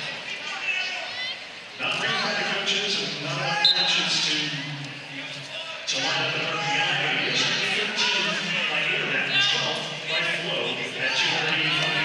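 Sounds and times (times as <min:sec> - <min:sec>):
referee's whistle: 0:03.6 - 0:04.1.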